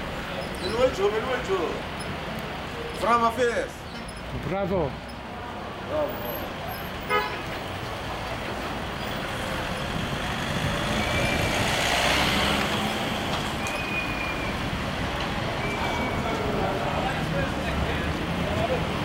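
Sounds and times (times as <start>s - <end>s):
cars passing: 0.0s - 19.0s
car horn toot: 7.1s - 7.5s.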